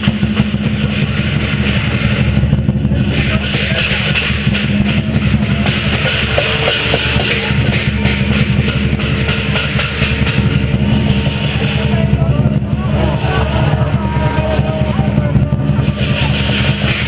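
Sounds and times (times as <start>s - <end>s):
drum beaten fast: 0.0s - 17.0s
hand cymbals clashing: 0.0s - 17.0s.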